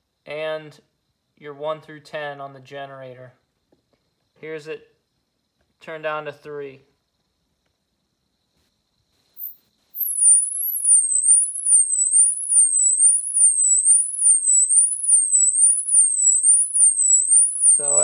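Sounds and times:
shrill warbling tone: 9.4s - 18.0s.

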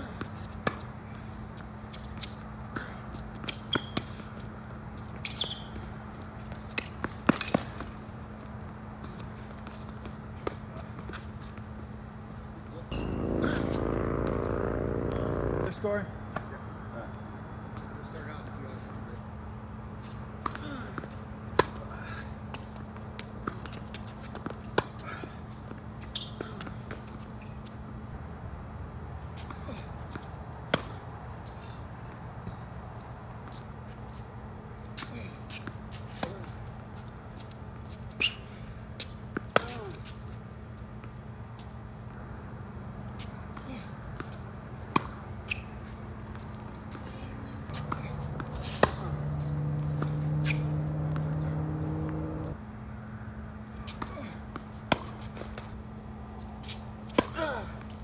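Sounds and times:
insects chirping trill: 11.3s - 16.0s
loud low droning: 12.8s - 16.0s, 47.7s - 52.6s
low steady hum: 12.9s - 15.8s
tennis ball strikes: 47.7s - 51.4s.

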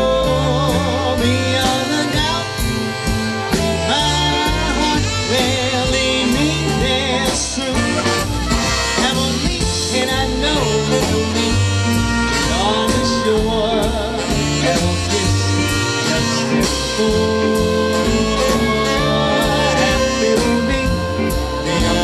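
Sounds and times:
swing band playing: 0.0s - 22.0s.

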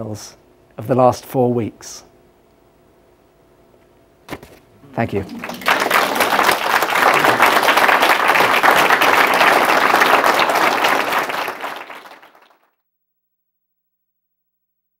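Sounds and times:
audience applauding: 4.9s - 12.7s.

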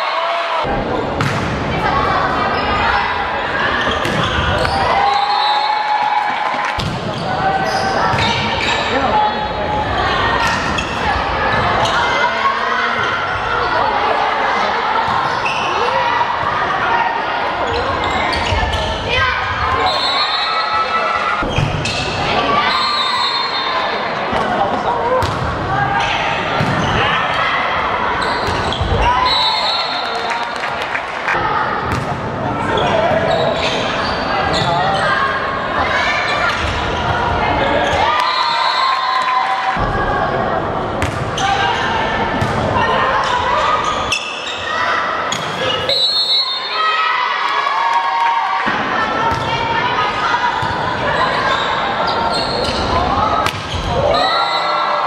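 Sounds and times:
volleyball hits: 0.8s - 1.8s, 3.9s - 4.9s, 6.0s - 7.2s, 24.3s - 25.6s, 26.5s - 27.0s, 31.8s - 32.3s, 41.0s - 41.4s, 53.4s - 54.1s.

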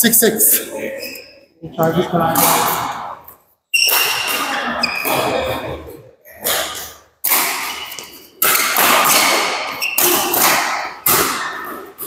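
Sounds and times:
rackets hitting shuttlecock: 2.3s - 5.4s, 6.4s - 12.0s.

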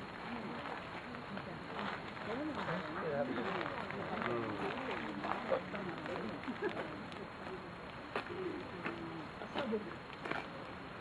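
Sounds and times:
bird cooing: 8.2s - 9.3s.

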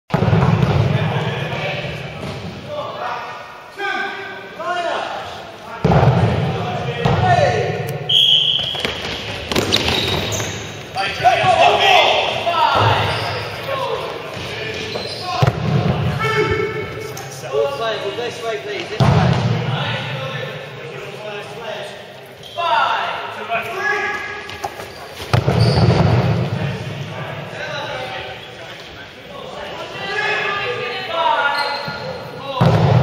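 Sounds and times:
high whistle blast: 8.1s - 8.9s
balls slapping floor and walls: 8.5s - 11.0s, 24.1s - 26.5s
players shouting: 9.7s - 20.6s.

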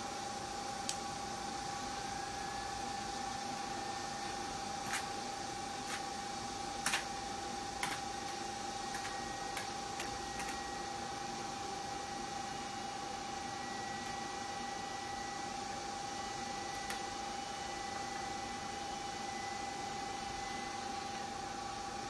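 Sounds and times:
laser machine high whine: 0.0s - 22.0s.

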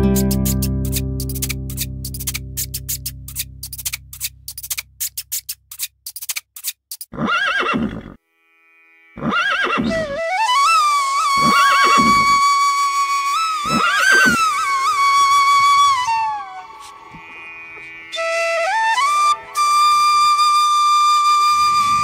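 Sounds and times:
flute music: 0.0s - 3.4s, 9.8s - 17.3s, 18.1s - 22.0s
horse whinnying: 7.1s - 8.2s, 9.2s - 10.2s, 11.4s - 12.4s, 13.7s - 14.4s.

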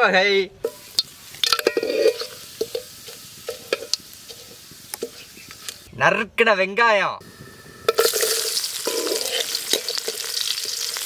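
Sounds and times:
seeds crackling and popping: 0.6s - 5.9s, 7.9s - 11.0s
spices sizzling in hot oil: 0.6s - 5.9s, 7.3s - 11.0s.

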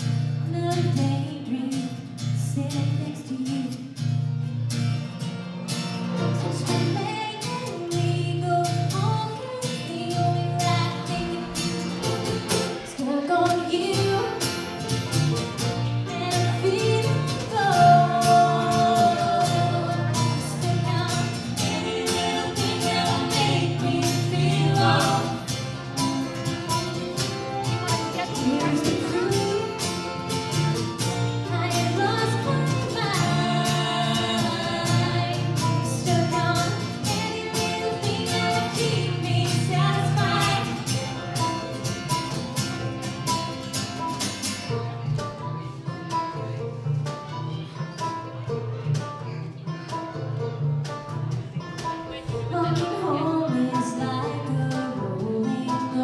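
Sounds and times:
acoustic guitar strumming: 0.0s - 56.0s
woman singing: 0.4s - 4.0s, 6.5s - 12.1s, 12.7s - 14.8s, 16.0s - 25.5s, 27.8s - 30.4s, 31.2s - 41.0s, 52.2s - 56.0s
band playing: 4.2s - 56.0s.

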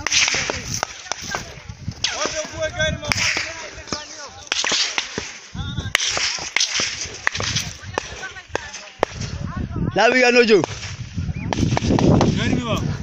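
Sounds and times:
sharp cracks: 0.0s - 9.5s, 10.4s - 12.6s
wind noise: 0.0s - 13.0s.

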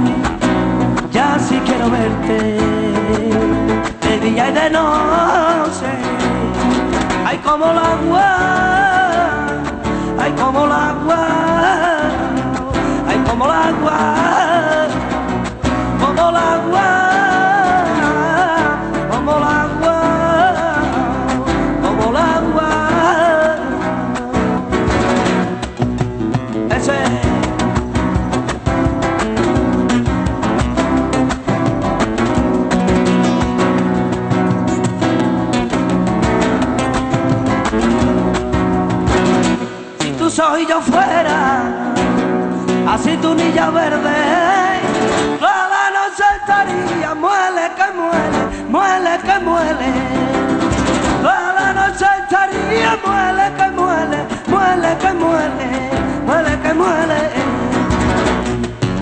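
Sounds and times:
flamenco guitar: 0.0s - 59.0s
man singing flamenco: 0.0s - 59.0s.

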